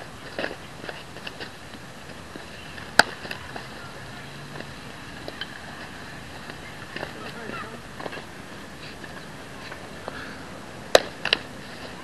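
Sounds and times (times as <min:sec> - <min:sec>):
baseball bat crack: 0:01.2 - 0:03.8, 0:10.9 - 0:12.0.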